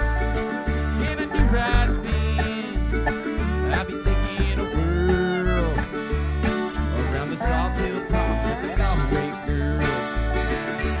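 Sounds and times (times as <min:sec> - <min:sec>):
acoustic guitars: 0:00.0 - 0:11.0
banjo: 0:00.0 - 0:11.0
fiddle: 0:00.0 - 0:11.0
mandolin: 0:00.0 - 0:11.0
resonator guitar: 0:00.0 - 0:11.0
upright bass steady beat: 0:00.0 - 0:11.0.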